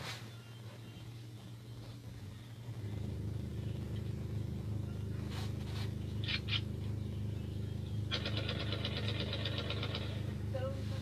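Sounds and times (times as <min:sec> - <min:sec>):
low engine hum: 0:00.0 - 0:11.0
fast even ticking: 0:08.0 - 0:10.2.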